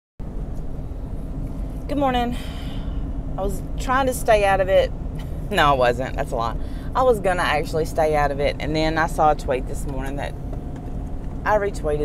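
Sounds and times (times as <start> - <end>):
car rumble inside cabin: 0.2 - 12.0.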